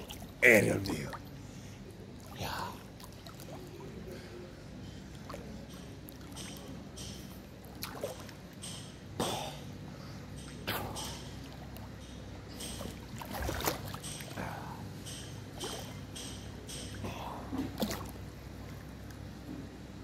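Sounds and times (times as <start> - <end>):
pool water sloshing: 0.0 - 20.0
steady low hum: 0.0 - 20.0
small water splashes: 2.2 - 4.1, 7.6 - 8.6, 12.6 - 14.4, 15.6 - 16.0, 17.6 - 19.1.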